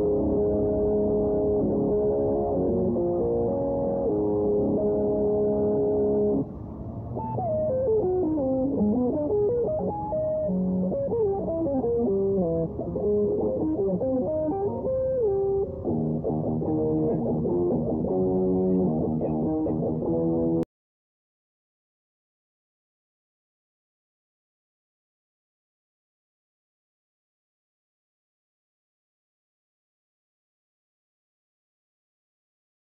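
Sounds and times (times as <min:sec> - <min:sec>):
electric guitar playing: 0:00.0 - 0:20.6.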